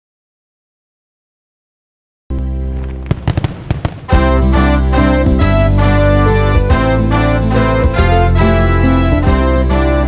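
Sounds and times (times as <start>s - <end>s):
background music: 2.3s - 10.0s
firework pops and crackles: 2.8s - 4.2s.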